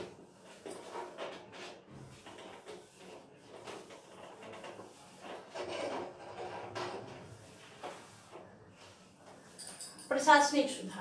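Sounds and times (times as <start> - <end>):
marker scratching on whiteboard: 0.0 - 8.5.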